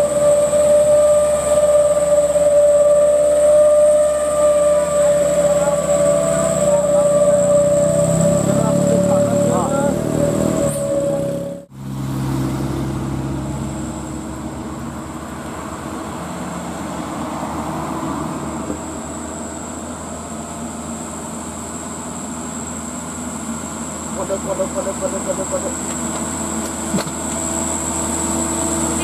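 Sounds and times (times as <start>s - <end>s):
steady horn-like tone: 0.0s - 11.7s
diesel truck engine running: 0.0s - 29.0s
passing traffic: 0.0s - 29.0s.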